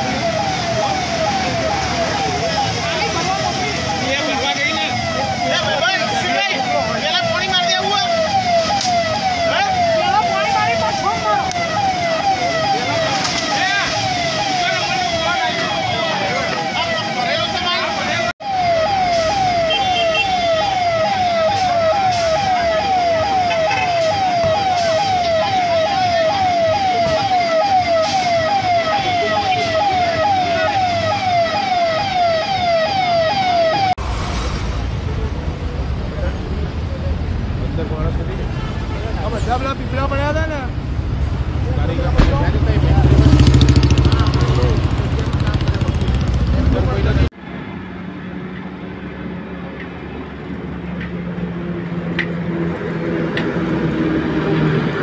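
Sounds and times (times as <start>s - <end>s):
siren yelping: 0.0s - 34.0s
sweeping siren tones: 0.0s - 35.4s.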